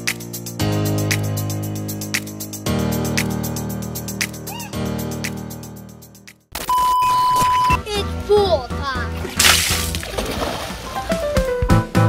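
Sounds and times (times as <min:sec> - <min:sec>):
background music with bass: 0:00.0 - 0:06.4, 0:07.2 - 0:12.0
child's voice: 0:04.5 - 0:04.8, 0:07.8 - 0:09.2
splash into swimming pool: 0:09.3 - 0:11.2.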